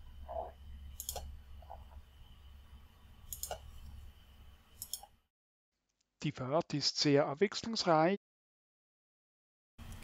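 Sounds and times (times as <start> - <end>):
faint low hum: 0.0 - 5.2
computer mouse click: 1.0 - 1.3, 3.3 - 3.7, 4.8 - 5.1.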